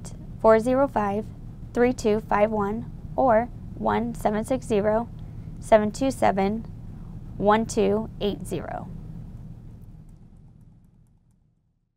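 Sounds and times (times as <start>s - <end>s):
faint low hum: 0.0s - 11.9s.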